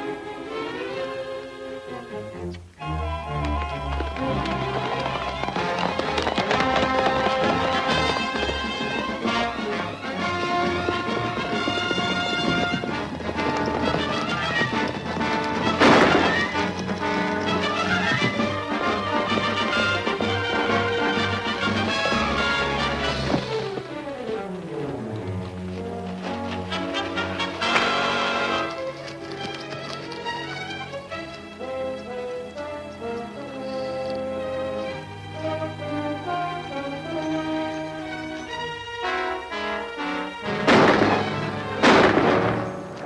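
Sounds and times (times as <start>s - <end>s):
orchestral action music: 0.0s - 29.0s, 30.2s - 43.0s.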